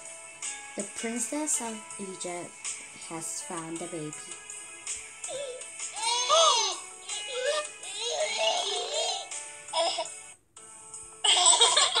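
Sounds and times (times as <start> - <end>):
gentle background music: 0.0 - 12.0
cartoon baby cooing and babbling: 5.2 - 10.1.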